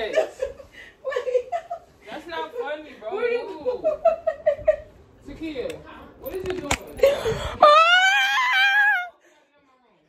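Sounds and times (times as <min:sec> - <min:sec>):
woman crying out: 0:07.6 - 0:09.1
woman wailing: 0:07.6 - 0:09.2.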